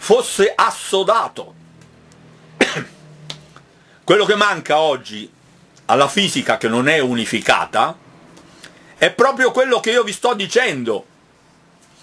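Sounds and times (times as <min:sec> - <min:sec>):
man coughing: 0:02.6 - 0:03.1.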